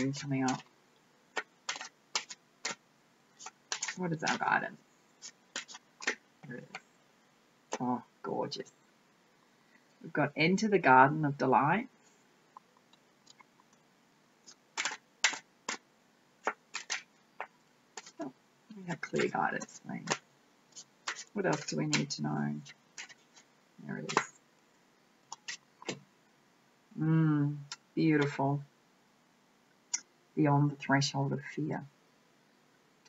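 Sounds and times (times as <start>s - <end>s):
cards being shuffled: 0.0s - 0.7s, 1.3s - 2.8s, 3.4s - 6.8s, 14.4s - 15.8s, 16.4s - 20.2s, 20.8s - 24.4s, 25.3s - 26.0s.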